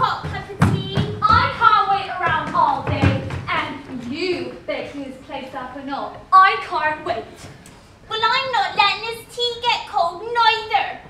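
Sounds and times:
feet thudding on wooden stage: 0:00.0 - 0:04.5.

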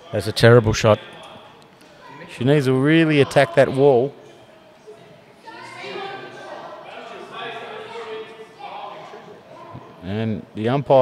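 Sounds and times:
people talking in echoing hall: 0:00.0 - 0:11.0.

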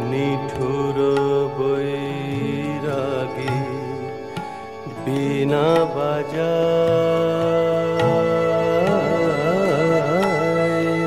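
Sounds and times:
classical vocal melody: 0:00.0 - 0:11.0.

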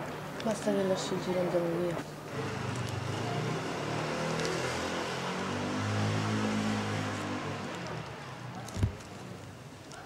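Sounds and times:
vehicle engine accelerating: 0:02.4 - 0:07.7.

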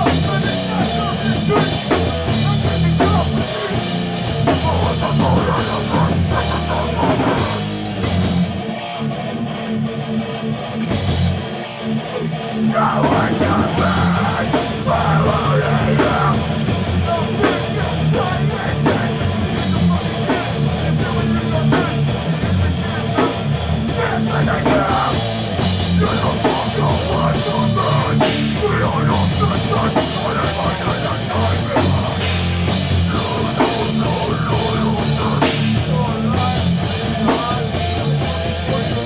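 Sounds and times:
heavy hardcore band playing: 0:00.0 - 0:39.0.

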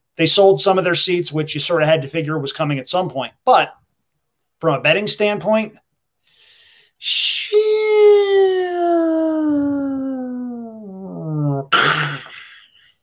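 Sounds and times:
breathy exhale: 0:06.3 - 0:07.0.

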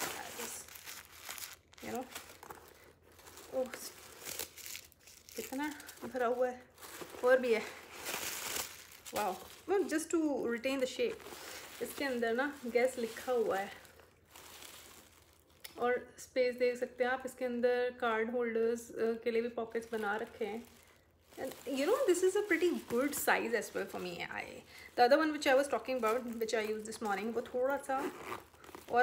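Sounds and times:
handbag rustling: 0:00.0 - 0:15.5, 0:19.7 - 0:29.0
tissue paper crinkling: 0:00.0 - 0:15.6, 0:19.7 - 0:29.0.

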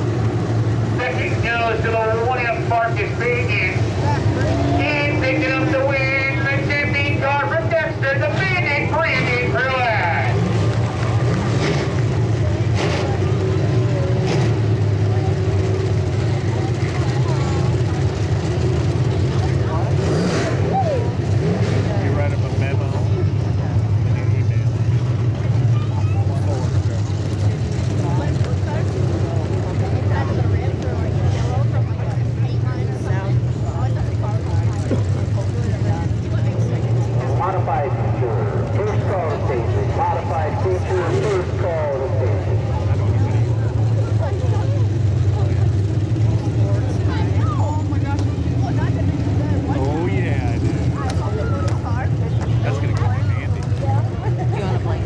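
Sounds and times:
car engines droning: 0:00.0 - 0:55.0
faint voices: 0:00.0 - 0:55.0.

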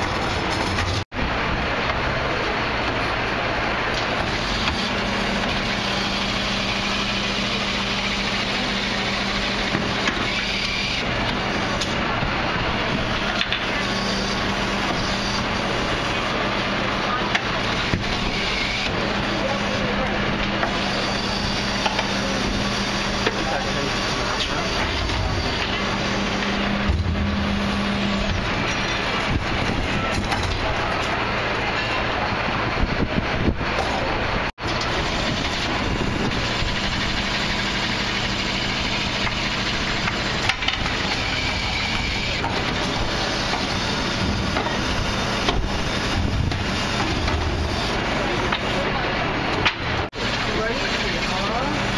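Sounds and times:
refuse truck engine running: 0:00.0 - 0:51.9
steady hydraulic hum: 0:00.0 - 0:51.9
heavy low rumble: 0:22.2 - 0:37.4.

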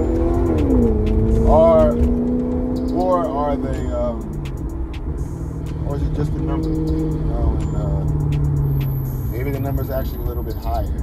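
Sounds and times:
car engine droning: 0:00.0 - 0:11.0.

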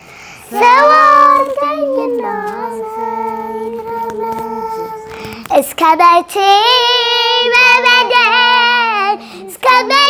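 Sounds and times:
breath: 0:00.0 - 0:00.5, 0:05.1 - 0:05.5, 0:09.2 - 0:09.5
girl singing: 0:00.4 - 0:10.0.

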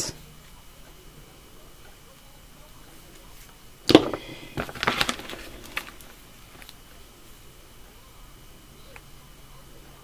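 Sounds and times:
tape rolls clicking and rustling: 0:03.9 - 0:06.8.

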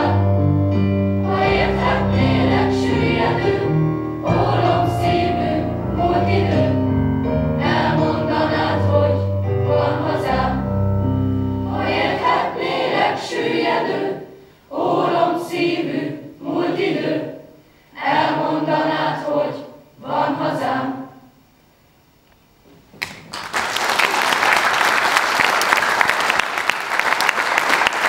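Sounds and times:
choir of young voices singing: 0:00.0 - 0:00.4, 0:01.2 - 0:21.4
low accompaniment notes: 0:00.0 - 0:13.2.

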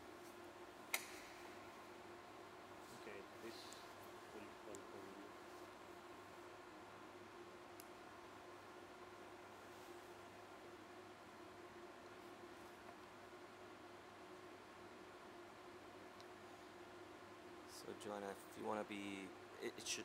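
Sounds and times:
faint room hum: 0:00.0 - 0:20.0.

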